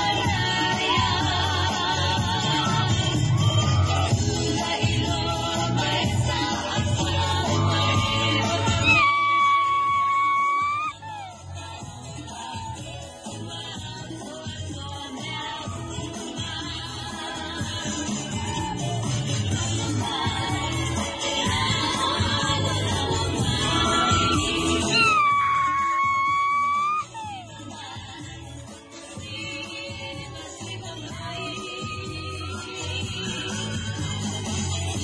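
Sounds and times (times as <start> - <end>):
faint dance music: 0.0 - 35.0.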